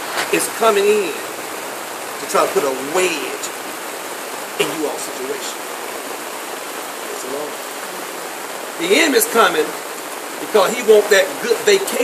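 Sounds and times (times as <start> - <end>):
steady rushing hiss: 0.0 - 12.0
man speaking: 0.3 - 1.3, 2.2 - 3.6, 4.6 - 5.6, 7.0 - 7.6, 8.8 - 9.8, 10.4 - 12.0.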